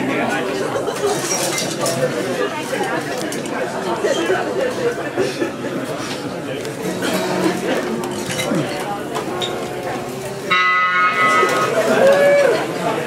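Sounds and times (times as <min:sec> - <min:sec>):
background chatter: 0:00.0 - 0:13.0
guitar note bending: 0:06.8 - 0:11.9.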